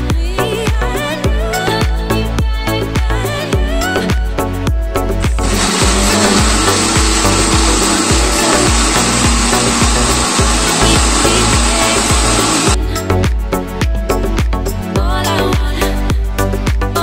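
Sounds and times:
background music with a beat: 0:00.0 - 0:17.0.

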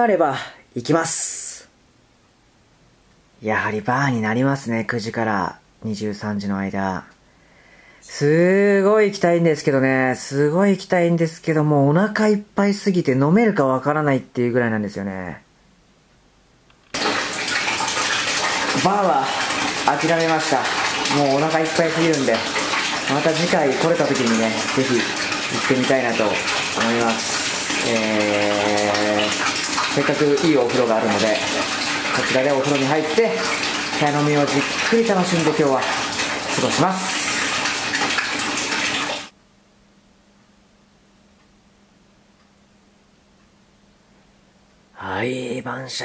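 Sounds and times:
tap water pouring into bathtub: 0:16.9 - 0:39.4.

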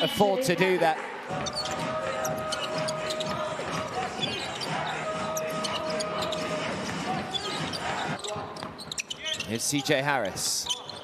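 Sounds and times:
arena music over speakers: 0:00.0 - 0:11.0
basketball dribbling: 0:01.3 - 0:09.6
sneakers squeaking: 0:01.3 - 0:11.0.

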